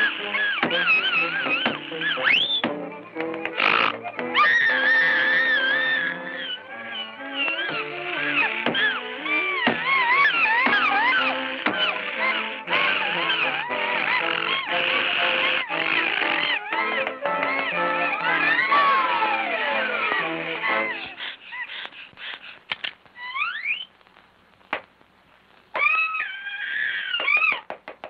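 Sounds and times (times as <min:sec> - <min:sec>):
cartoon music with held notes: 0:00.0 - 0:21.7.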